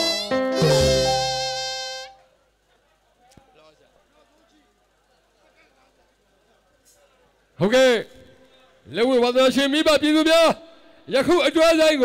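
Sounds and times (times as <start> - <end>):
drum strokes: 0.0 - 1.9
buzzing reed wind instrument: 0.0 - 2.2.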